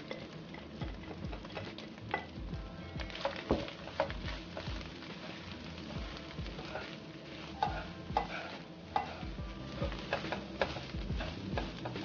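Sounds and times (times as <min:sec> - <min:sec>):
shrimp sizzling in a wok: 0:00.0 - 0:12.0
spatula scraping a pan: 0:03.1 - 0:12.0.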